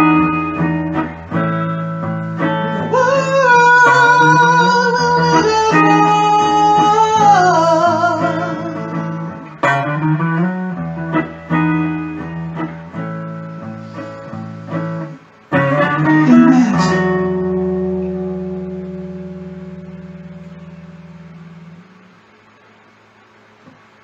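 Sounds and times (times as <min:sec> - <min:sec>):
guitar strumming chords: 0:00.0 - 0:22.4.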